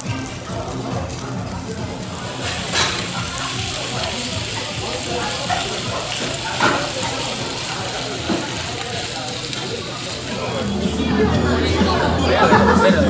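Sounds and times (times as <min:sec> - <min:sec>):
meat sizzling on a hot pan: 0:00.0 - 0:10.9.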